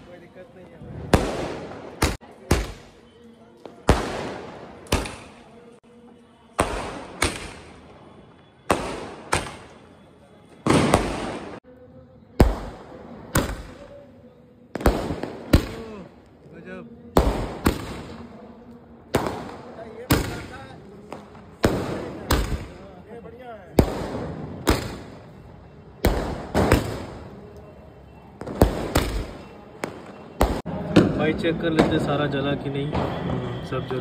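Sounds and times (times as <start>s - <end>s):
firework bangs with echo: 0.9s - 3.0s, 3.7s - 5.6s, 6.5s - 8.0s, 8.6s - 9.9s, 10.6s - 11.6s, 12.4s - 13.9s, 14.7s - 16.1s, 17.1s - 18.4s, 19.1s - 23.0s, 23.7s - 25.4s, 26.0s - 27.3s, 28.4s - 32.2s, 32.9s - 33.6s.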